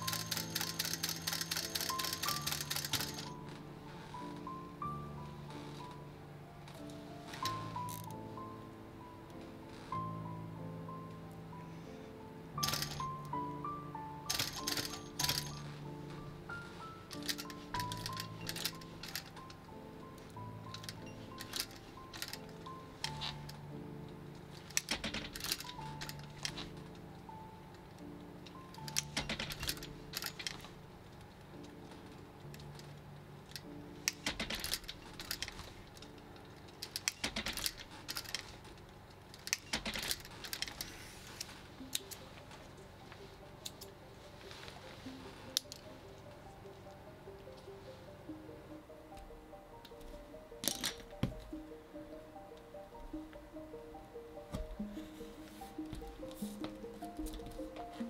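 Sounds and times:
soft background music: 0.0s - 58.0s.

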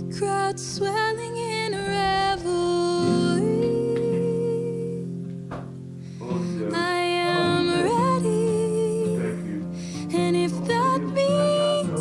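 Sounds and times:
instrumental backing: 0.0s - 12.0s
person singing long notes: 6.2s - 12.0s.

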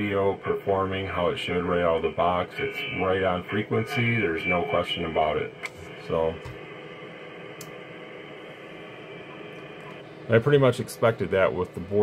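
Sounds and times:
radio receiver hiss: 0.0s - 12.0s.

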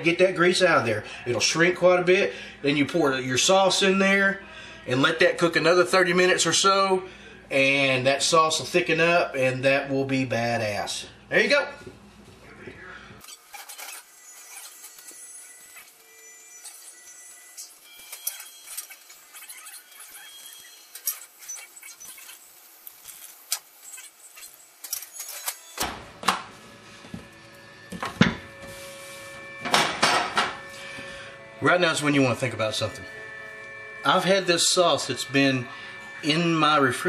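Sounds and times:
faint background music: 0.0s - 11.8s, 29.5s - 37.0s.

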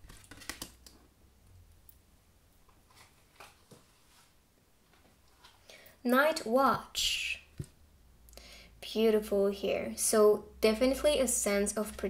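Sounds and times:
cards tapping and sliding: 0.0s - 1.0s.

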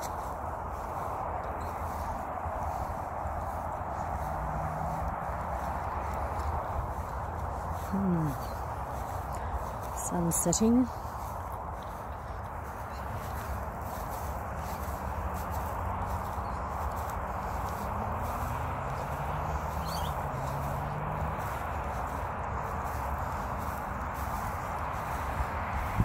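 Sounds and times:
footsteps on grass: 0.0s - 26.0s.

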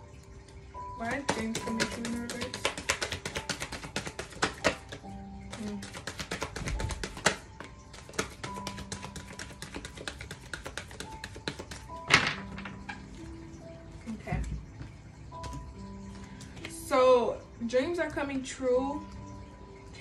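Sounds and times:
soft background music: 0.0s - 20.0s.

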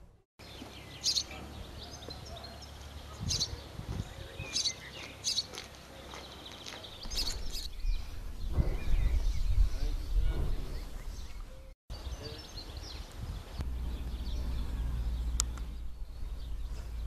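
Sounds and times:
birds chirping: 0.4s - 17.0s.

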